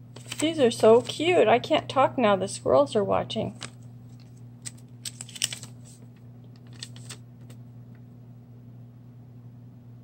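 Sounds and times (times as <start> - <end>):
steady low hum: 0.0 - 10.0
paper pieces clicking and tapping: 3.6 - 7.6.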